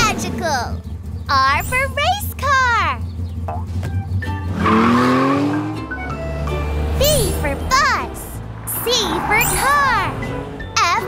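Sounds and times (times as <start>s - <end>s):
cheerful background music: 0.0s - 11.0s.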